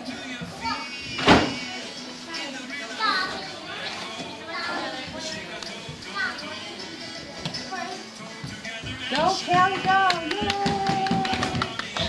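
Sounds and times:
young children chattering: 0:00.3 - 0:08.4
loud thump: 0:01.2 - 0:01.6.

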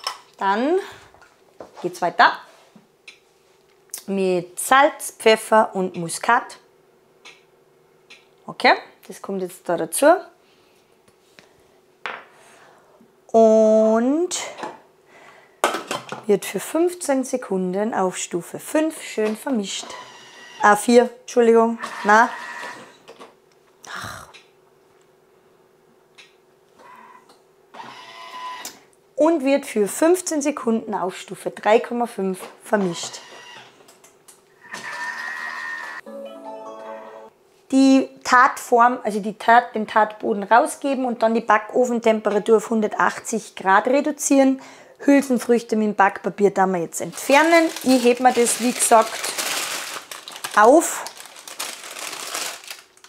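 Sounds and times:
food processor high whine: 0:34.6 - 0:36.0
electronic chime tones: 0:36.0 - 0:37.3.

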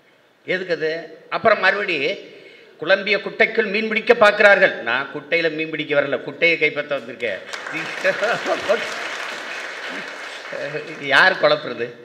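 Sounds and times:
audience applauding: 0:07.4 - 0:11.8.

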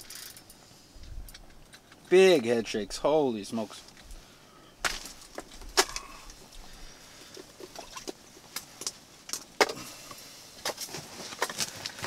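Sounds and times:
fishing reel clicks and knocks: 0:00.0 - 0:00.5.

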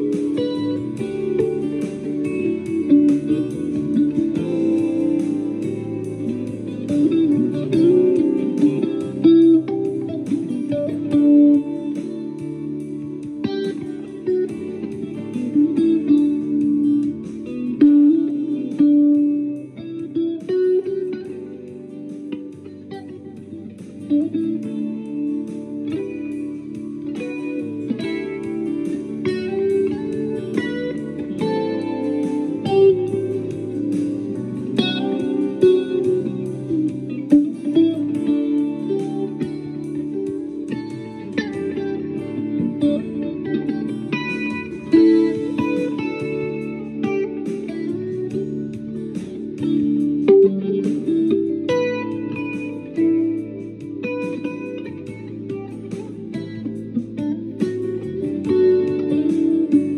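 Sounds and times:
electric guitar picked notes and chords: 0:00.0 - 0:59.9.

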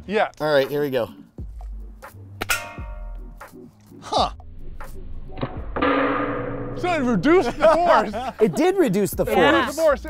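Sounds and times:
metallic ping of ball hitting can: 0:02.4 - 0:03.2, 0:05.4 - 0:06.8.

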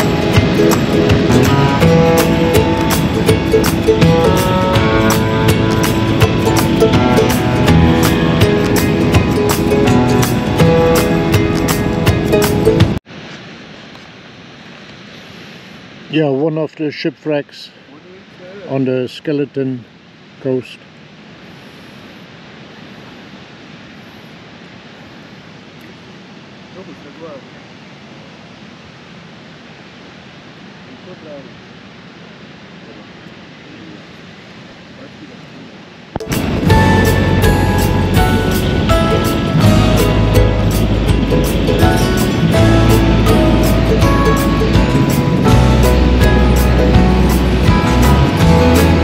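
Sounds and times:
music with heavy bass: 0:00.0 - 0:13.0, 0:36.2 - 0:49.0
ocean surf on beach: 0:00.0 - 0:49.0.

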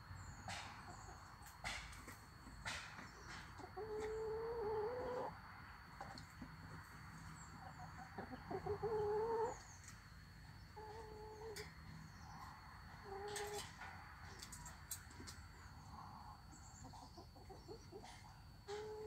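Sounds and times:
hens calling: 0:03.3 - 0:05.4, 0:07.5 - 0:09.7.

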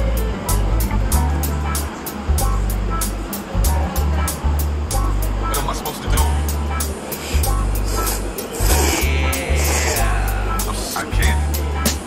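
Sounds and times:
music with drum beat and bass: 0:00.0 - 0:12.0.

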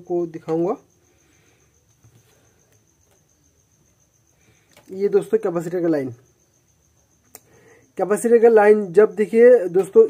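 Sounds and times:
high-pitched cricket trill: 0:00.0 - 0:10.0
faint wire clicks: 0:04.6 - 0:05.0, 0:07.2 - 0:07.6.

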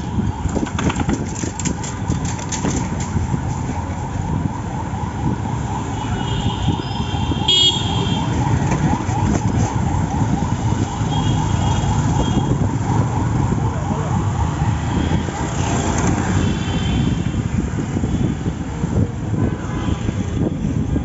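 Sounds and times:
traffic engines and tyres rumbling: 0:00.0 - 0:21.0
vehicle horn: 0:06.2 - 0:08.2.

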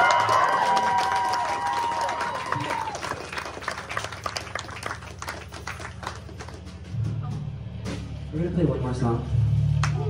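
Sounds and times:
crowd clapping: 0:00.0 - 0:06.9, 0:09.8 - 0:10.0.

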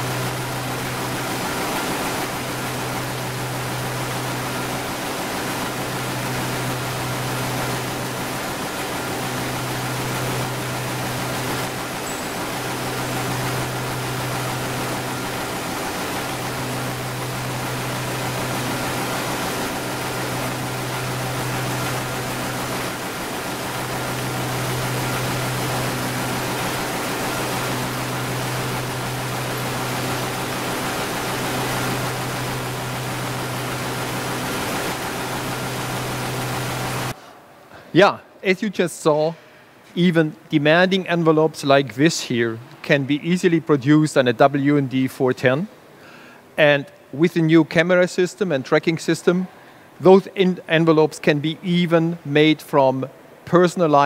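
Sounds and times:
machine rushing noise: 0:00.0 - 0:37.2
low hum: 0:00.0 - 0:37.4.

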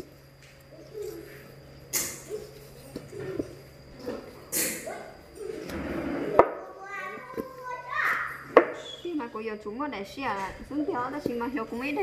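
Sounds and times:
child's voice: 0:06.6 - 0:08.9.

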